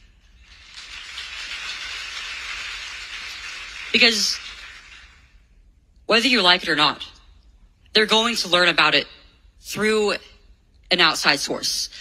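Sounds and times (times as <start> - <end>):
audience applauding: 0.0 - 5.4.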